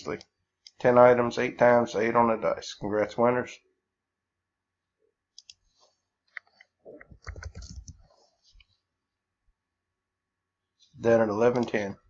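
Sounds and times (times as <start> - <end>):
computer mouse clicks: 5.3 - 5.7, 6.3 - 8.0.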